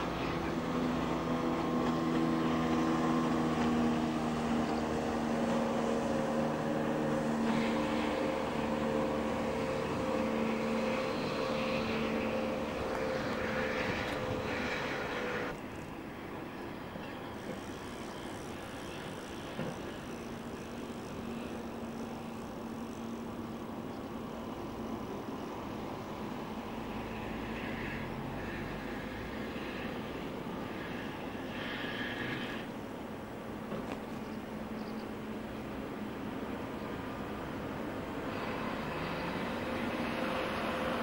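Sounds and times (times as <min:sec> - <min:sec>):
engine droning: 0:00.0 - 0:41.0
outdoor noise: 0:00.0 - 0:41.0.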